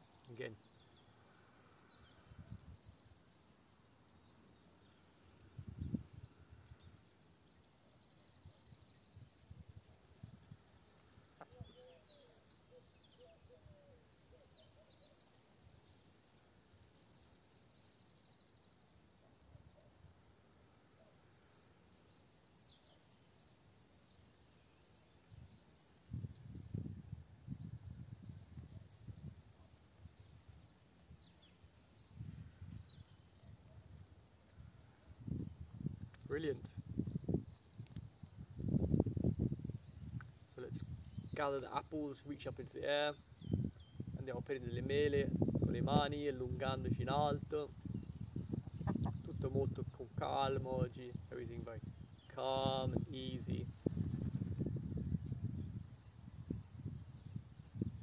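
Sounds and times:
insects trilling: 0.0s - 6.9s, 8.0s - 18.8s, 20.7s - 33.3s, 33.9s - 36.2s, 36.9s - 46.2s, 47.4s - 49.4s, 50.9s - 54.4s, 55.6s - 58.0s.

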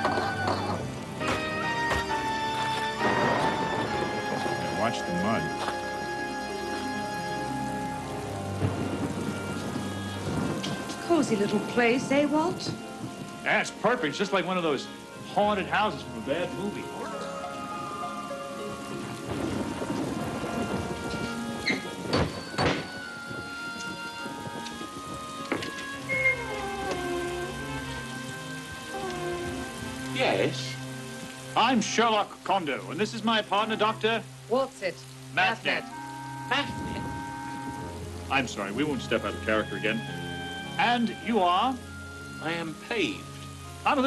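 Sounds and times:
thunder rumbling: 0.0s - 31.4s, 36.4s - 40.3s
steady rain: 0.0s - 44.0s
sustained music chords: 0.8s - 31.8s
heavy door creaking open: 19.3s - 24.7s, 25.4s - 28.2s.

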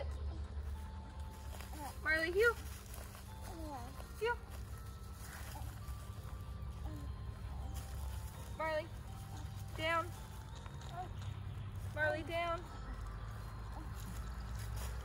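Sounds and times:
low outdoor rumble: 0.0s - 15.0s
woman calling a dog: 1.8s - 2.6s, 3.6s - 4.5s.

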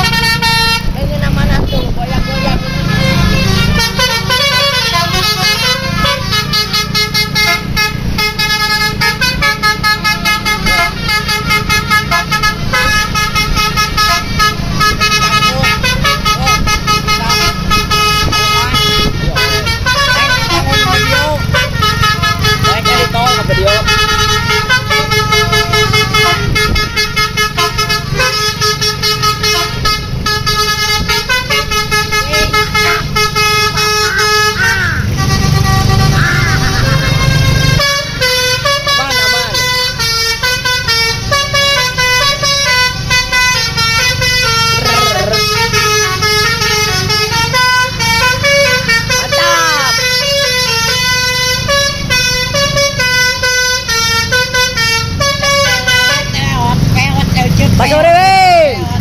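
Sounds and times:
multi-tone air horns playing tune: 0.0s - 57.1s.

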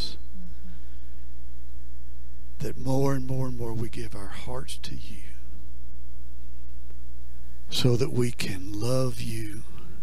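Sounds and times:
man's voice: 0.0s - 0.2s, 2.6s - 5.5s, 7.7s - 9.8s
low electrical mains hum: 0.0s - 10.0s.

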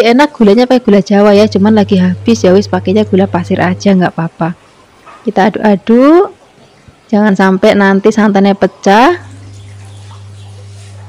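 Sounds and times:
low hum: 1.1s - 5.1s, 8.7s - 11.0s.

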